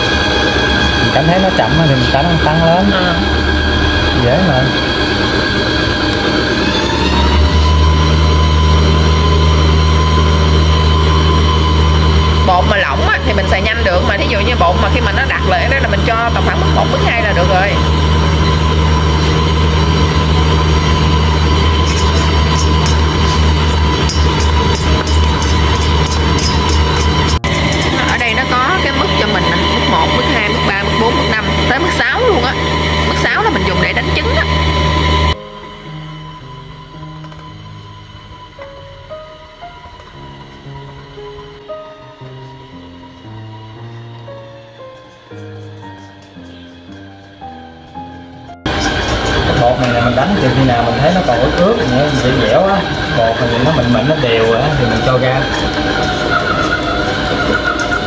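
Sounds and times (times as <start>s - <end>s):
stand mixer motor running: 0.0s - 58.0s
soft background music: 6.1s - 58.0s.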